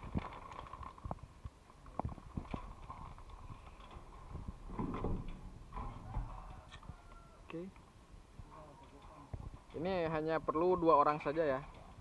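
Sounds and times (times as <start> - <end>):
metal roof frame knocking: 4.7 - 6.5.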